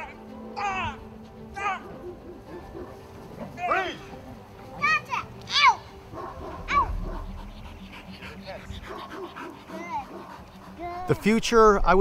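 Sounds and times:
dog barking: 1.8s - 3.1s, 6.1s - 7.6s, 8.5s - 10.4s
quiet dog sounds: 6.1s - 11.4s.

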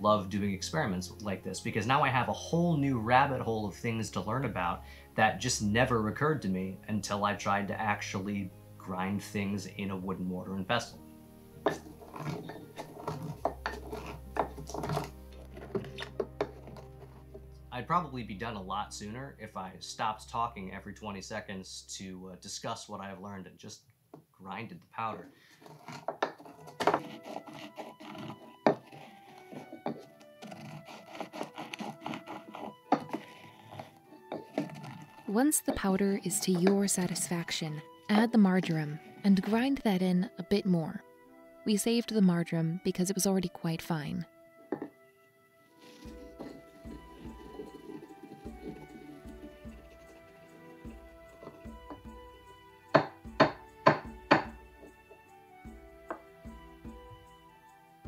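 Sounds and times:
background music of held notes: 0.0s - 23.1s, 26.2s - 58.0s
wood knocking on wood: 11.6s - 17.5s, 25.7s - 35.3s, 44.7s - 45.0s, 45.9s - 52.3s, 52.9s - 55.2s, 56.0s - 56.3s
pestle grinding spices in mortar: 11.7s - 17.5s, 25.6s - 35.4s, 45.8s - 52.3s, 53.0s - 55.2s.

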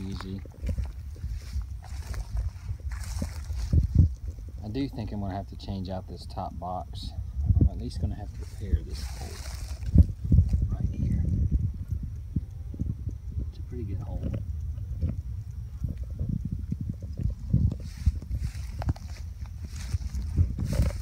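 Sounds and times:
footsteps through dry grass: 0.0s - 5.3s, 7.7s - 11.8s, 16.8s - 21.0s.

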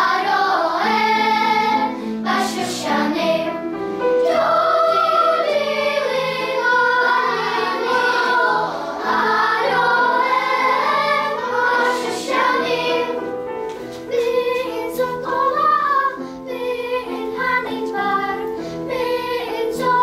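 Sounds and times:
children's choir singing: 0.0s - 20.0s.

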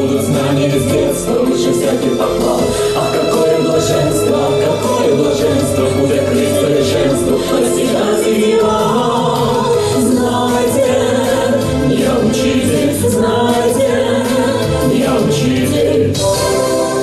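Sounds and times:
man and women singing: 0.0s - 17.0s
musical accompaniment: 0.0s - 17.0s.

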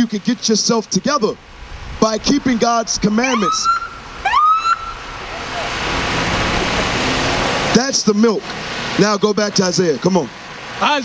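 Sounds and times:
vehicle passing on street: 0.0s - 11.0s.

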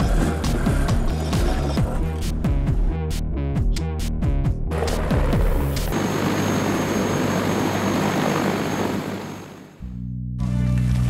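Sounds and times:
helicopter flying close by: 4.7s - 9.8s.

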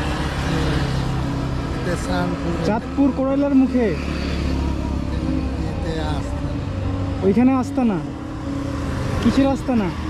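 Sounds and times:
man speaking: 5.1s - 6.6s.

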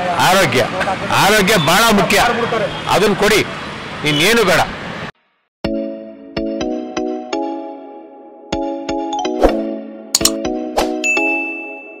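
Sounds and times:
quick double click: 10.2s - 10.4s
notification bell ding: 11.0s - 12.0s.

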